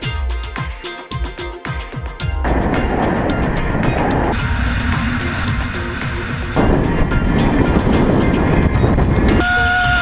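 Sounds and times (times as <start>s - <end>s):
wind rush on zip wire: 2.4s - 10.0s.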